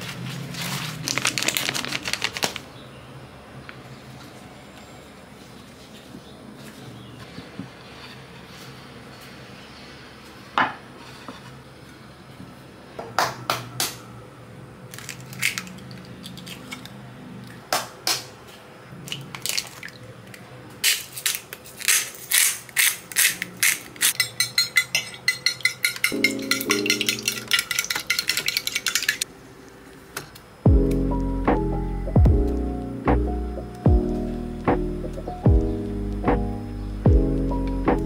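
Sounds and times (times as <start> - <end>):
eggs cracking on dish rim: 20.8 - 29.2
fork whisking in dish: 24.1 - 29.2.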